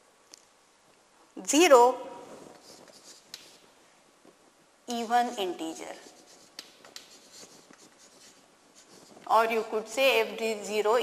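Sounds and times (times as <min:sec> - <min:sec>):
chalk scratching on a blackboard: 0:02.6 - 0:03.6, 0:04.9 - 0:09.4.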